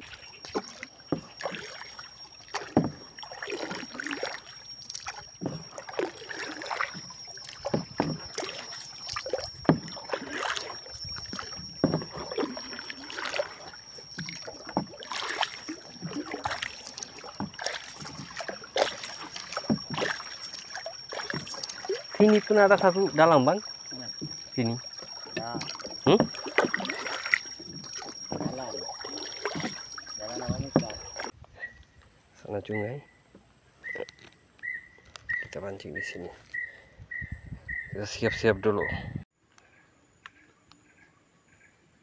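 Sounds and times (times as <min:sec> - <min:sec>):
paddle strokes splashing in water: 0:00.0 - 0:31.3
thin high whine: 0:00.0 - 0:31.3
sharp knocks on wooden canoe: 0:02.5 - 0:03.0, 0:07.4 - 0:08.5, 0:09.5 - 0:10.1, 0:11.3 - 0:12.3, 0:25.4 - 0:26.8, 0:27.8 - 0:28.8, 0:30.4 - 0:31.3.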